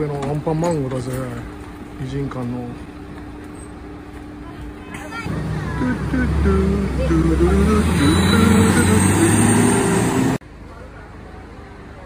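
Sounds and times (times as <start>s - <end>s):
bus diesel engine rumbling: 0.0s - 12.0s.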